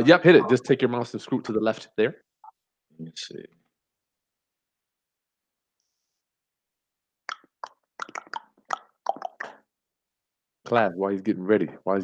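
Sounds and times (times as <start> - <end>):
man speaking clipped syllables: 0.0 - 2.1.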